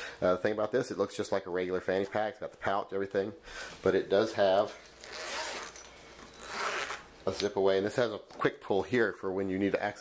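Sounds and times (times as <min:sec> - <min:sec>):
zipper being pulled open: 0:05.0 - 0:07.1.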